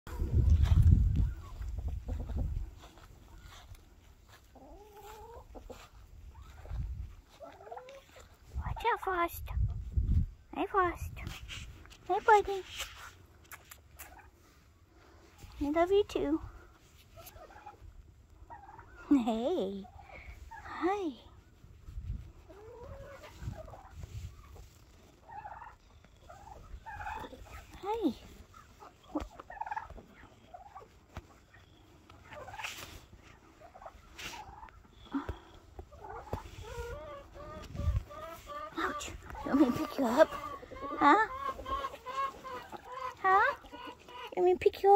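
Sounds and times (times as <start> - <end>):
poultry clucking: 0.1 - 9.2, 13.4 - 44.9.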